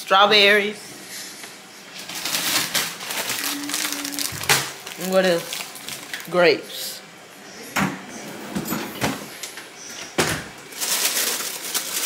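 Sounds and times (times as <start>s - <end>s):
plastic bag crinkling: 2.0s - 6.5s, 10.7s - 12.0s.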